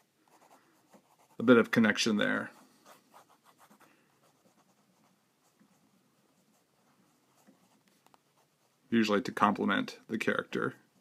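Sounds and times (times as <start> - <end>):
pencil scratching on paper: 0.0 - 1.6, 2.4 - 8.8.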